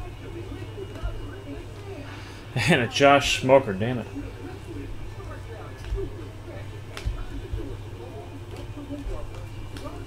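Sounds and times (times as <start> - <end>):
faint background voices: 0.0 - 10.0
steady low hum: 0.0 - 10.0.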